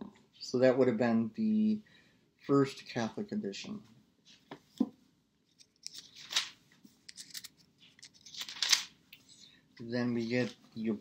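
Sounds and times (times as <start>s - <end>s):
book pages turning: 5.5s - 9.4s, 10.1s - 10.6s.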